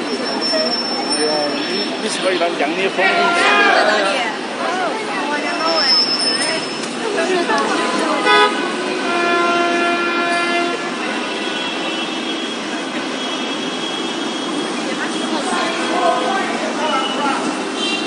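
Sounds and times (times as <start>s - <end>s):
traffic noise: 0.0s - 18.0s
vehicle horns honking: 1.4s - 4.0s, 7.9s - 14.8s, 16.8s - 18.0s.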